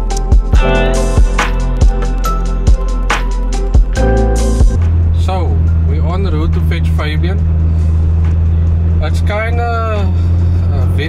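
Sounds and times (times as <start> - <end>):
car driving drone inside cabin: 1.0 - 11.0
man talking: 9.0 - 11.0.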